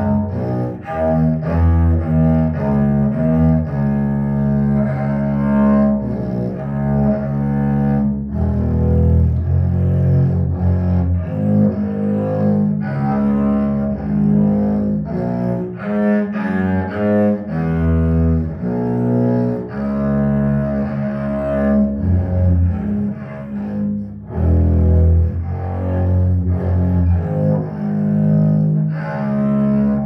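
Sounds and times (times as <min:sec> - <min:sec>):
bowed double bass: 0:00.0 - 0:30.0.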